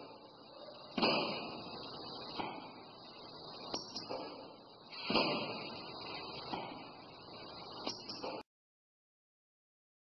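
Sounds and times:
steady high hiss: 0.0 - 8.4.

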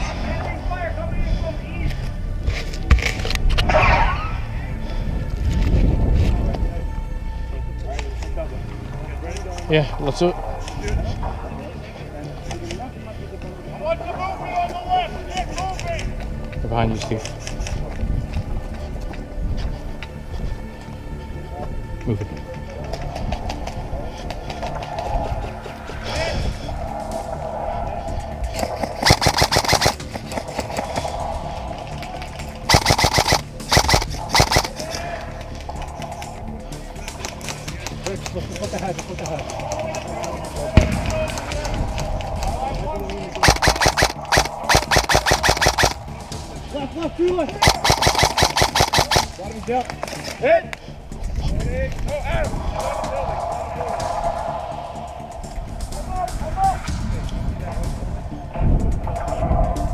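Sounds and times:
background music: 0.0 - 59.9
airsoft guns firing full-auto: 29.0 - 30.0, 32.7 - 34.8, 43.4 - 46.0, 47.6 - 49.3.

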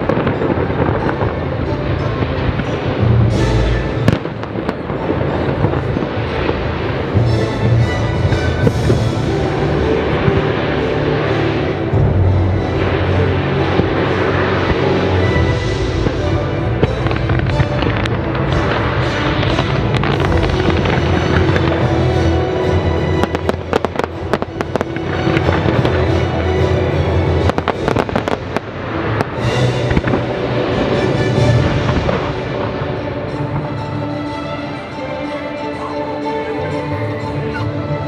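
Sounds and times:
firework shells bursting and crackling: 0.0 - 34.9
show music: 0.0 - 38.0.

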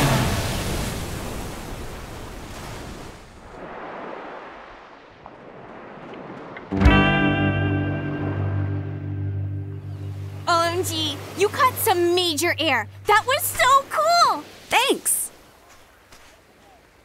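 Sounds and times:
water splashing and churning: 0.0 - 6.8, 10.2 - 17.0
electric guitar music: 6.8 - 13.1.

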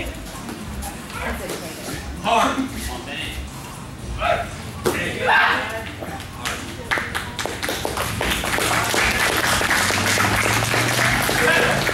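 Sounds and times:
onlookers applauding: 6.9 - 11.9.

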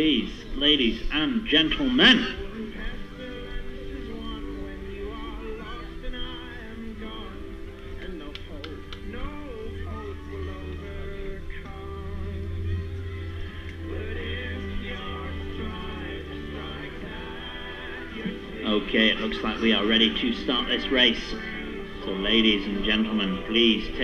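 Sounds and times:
music with long held notes: 0.0 - 24.0
people talking: 0.0 - 24.0.

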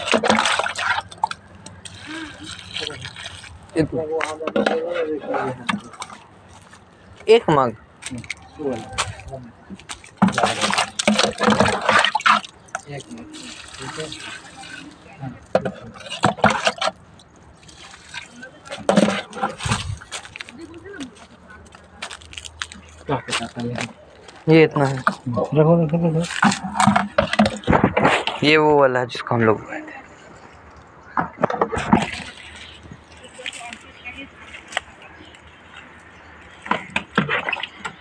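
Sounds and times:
water sloshing: 0.0 - 38.0.

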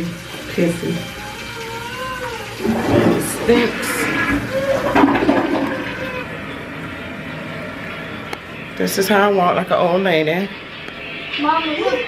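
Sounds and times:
toilet flushing: 0.0 - 11.2.

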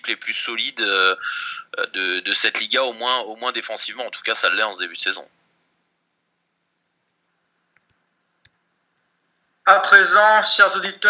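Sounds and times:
small clicks: 7.0 - 9.5.

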